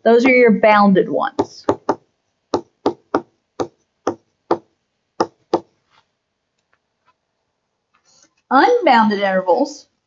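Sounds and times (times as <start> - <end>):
stylus tapping on tablet screen: 1.4 - 7.2.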